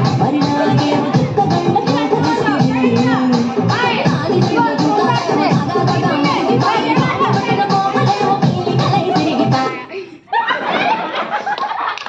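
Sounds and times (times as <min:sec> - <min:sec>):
music: 0:00.0 - 0:09.9.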